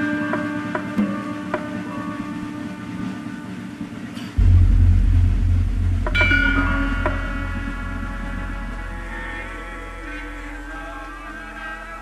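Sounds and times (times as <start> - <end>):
large gong ringing: 4.4 - 11.9.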